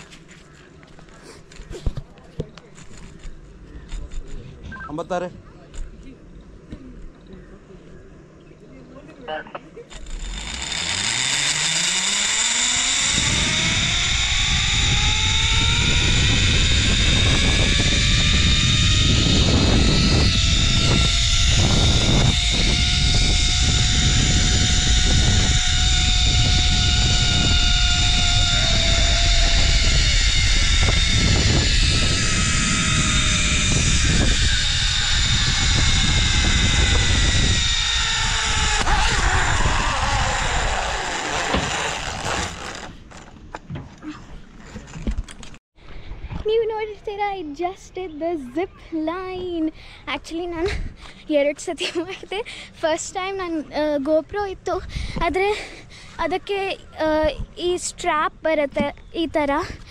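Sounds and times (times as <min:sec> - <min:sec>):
zip-line pulleys whirring: 0:09.9 - 0:45.6, 0:49.6 - 0:52.6
wind rush on microphone: 0:12.7 - 0:43.1, 0:54.5 - 0:56.0.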